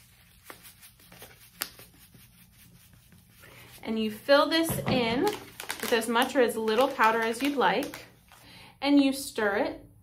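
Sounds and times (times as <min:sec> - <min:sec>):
foil packet rustling: 0:05.0 - 0:08.6.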